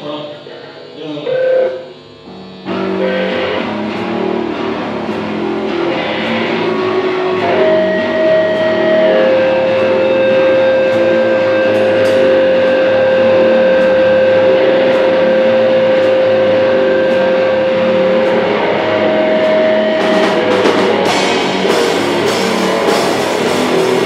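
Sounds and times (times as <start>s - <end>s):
electric guitar feedback whistling: 0.0s - 24.0s
noisy amp drone: 0.0s - 24.0s
light cymbal taps: 5.0s - 23.6s.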